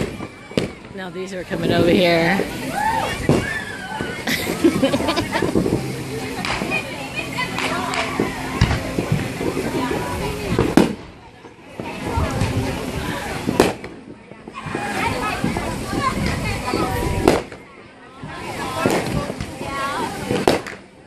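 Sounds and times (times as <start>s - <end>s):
fireworks bangs: 0.0s - 2.5s, 3.2s - 20.8s.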